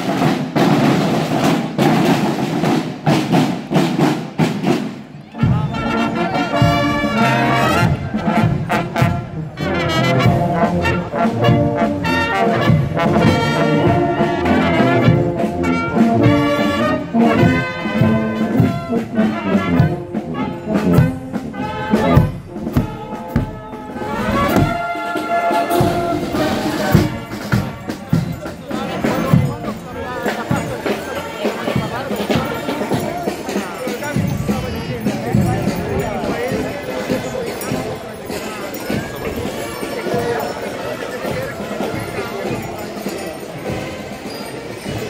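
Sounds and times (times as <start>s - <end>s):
brass band playing a march: 0.0s - 45.0s.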